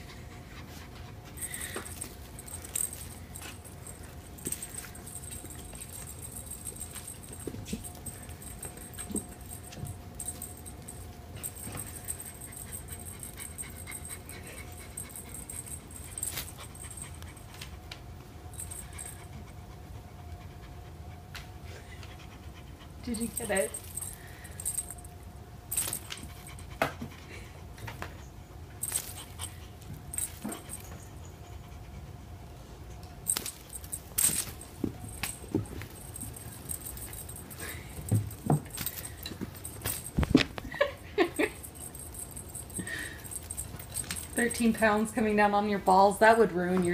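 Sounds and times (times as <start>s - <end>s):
cat panting: 0.0s - 10.6s, 11.4s - 18.0s, 18.6s - 24.8s, 26.0s - 27.7s, 28.9s - 32.6s.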